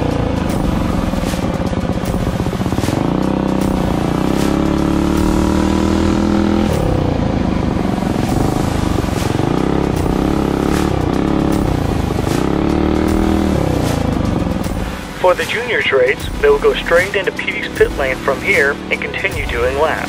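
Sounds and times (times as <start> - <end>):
minibike engine revving: 0.0 - 20.0.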